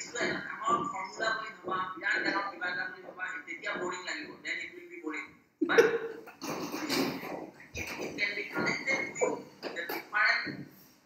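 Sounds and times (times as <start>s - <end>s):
man speaking over video call: 0.0s - 10.8s.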